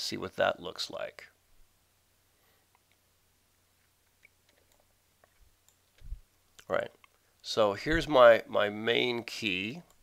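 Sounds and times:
person breath sound: 2.3 - 2.8
computer mouse clicks: 4.2 - 6.1.

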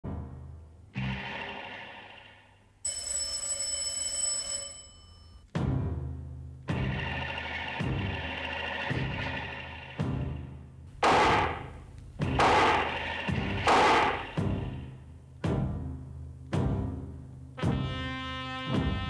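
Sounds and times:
electric doorbell ringing: 2.8 - 5.5
music with heavy drum beat: 12.2 - 14.8.

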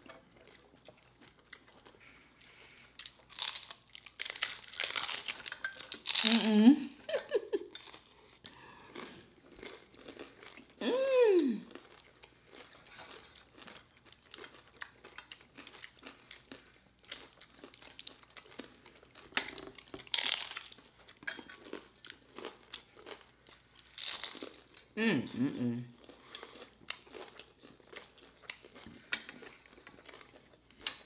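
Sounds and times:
crunching taco shells: 0.0 - 6.6, 9.0 - 10.8, 11.7 - 24.9, 26.0 - 31.0
person humming mmm: 10.8 - 11.7.

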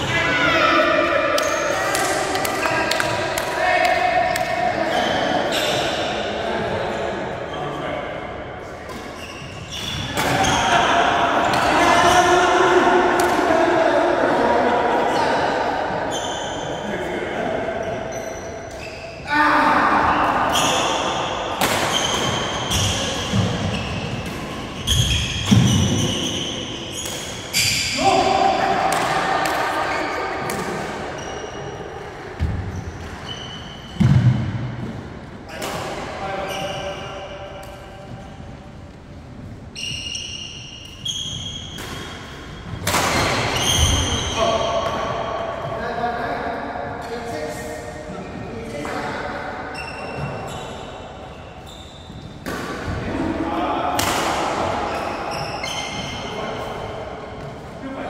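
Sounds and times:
shoe squeaks: 1.4 - 2.0, 4.9 - 6.1, 9.0 - 10.7, 16.1 - 16.9, 17.8 - 19.2, 21.9 - 28.0, 31.1 - 31.8, 32.6 - 34.2, 36.4 - 37.2, 39.7 - 42.8, 43.4 - 44.8, 49.7 - 52.4, 54.9 - 56.7.

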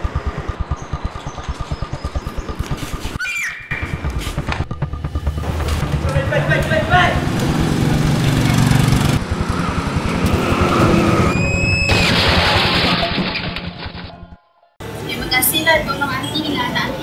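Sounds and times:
motorcycle engine revving: 0.0 - 12.4.

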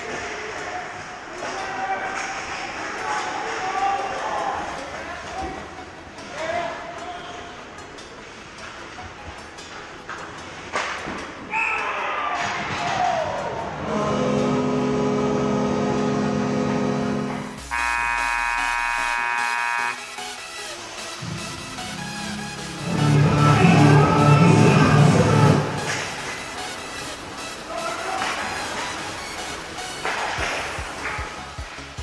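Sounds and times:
hockey sticks clattering: 0.0 - 13.9, 25.7 - 32.0
rink horn blasts: 13.8 - 20.2
skates on ice: 25.6 - 32.0.

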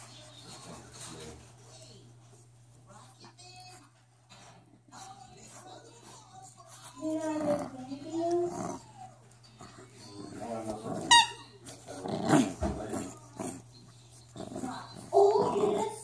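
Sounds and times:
puppy growling: 7.0 - 16.0.

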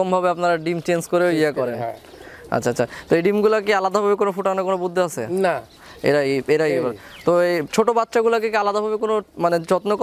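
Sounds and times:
man talking: 0.0 - 10.0
pigeons cooing: 1.1 - 3.6, 5.3 - 7.3.

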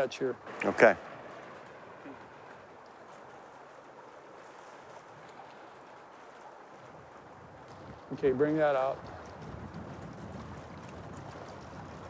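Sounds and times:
fast-flowing river water: 0.0 - 12.0.

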